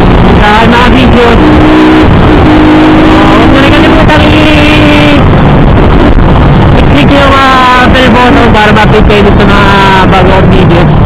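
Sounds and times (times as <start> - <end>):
motorcycle engine humming: 0.0 - 11.0
rushing ride noise: 0.0 - 11.0.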